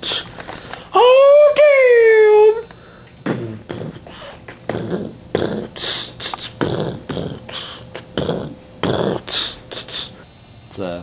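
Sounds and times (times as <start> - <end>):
person beatboxing: 3.2 - 10.2.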